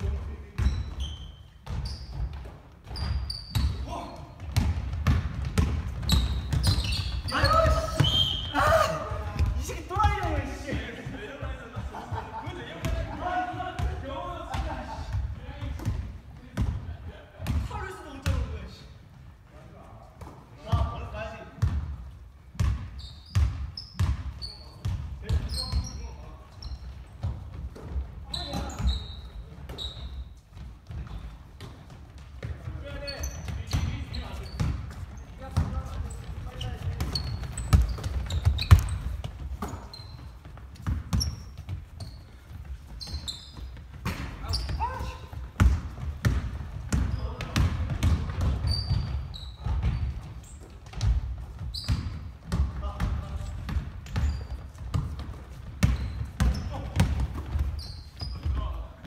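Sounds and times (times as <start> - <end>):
sneakers squeaking: 0.0 - 59.0
basketball bouncing on wood: 4.4 - 8.1, 44.0 - 57.7.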